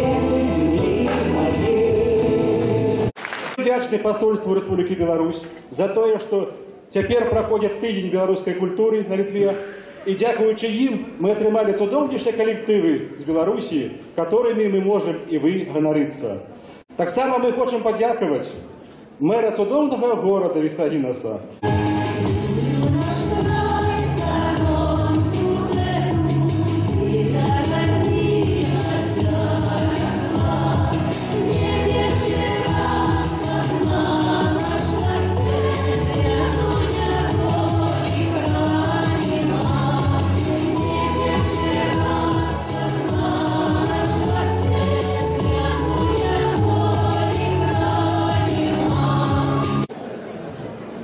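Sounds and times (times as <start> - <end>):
large choir singing: 0.0 - 3.2, 21.6 - 49.9
instrumental accompaniment with beat: 21.6 - 49.9.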